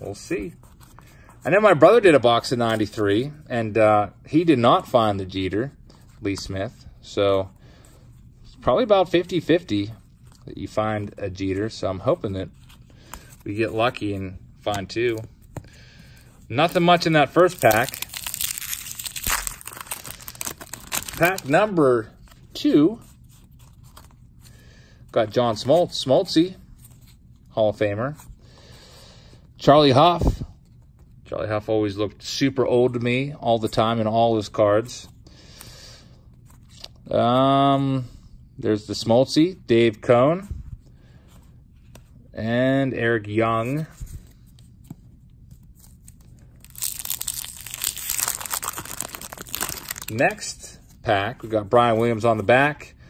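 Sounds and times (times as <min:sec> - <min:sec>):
low room hum: 0:00.0 - 0:53.0
cardboard cards rustling: 0:08.7 - 0:24.4, 0:43.5 - 0:52.6
wrapper tearing and crinkling: 0:16.8 - 0:21.6, 0:46.6 - 0:50.4.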